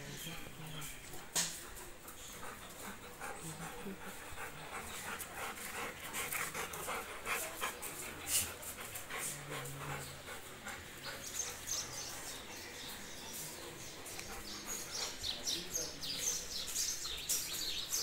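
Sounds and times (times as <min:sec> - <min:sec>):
dogs panting: 0:00.0 - 0:18.0.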